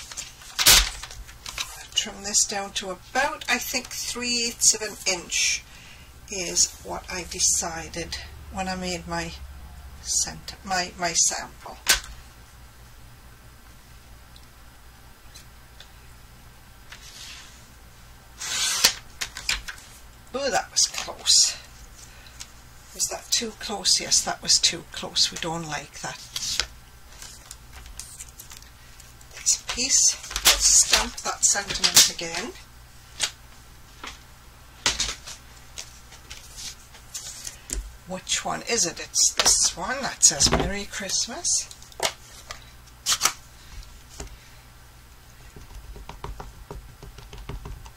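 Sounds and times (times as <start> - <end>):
paper trimmer blade scraping: 18.4 - 19.0.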